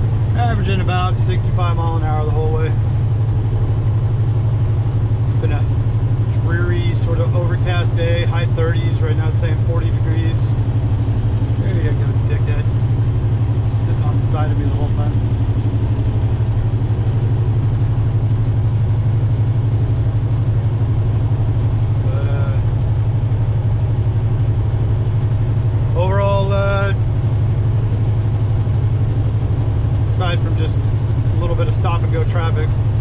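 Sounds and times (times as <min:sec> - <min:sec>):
road noise: 0:00.0 - 0:33.0
truck diesel engine droning: 0:00.0 - 0:33.0.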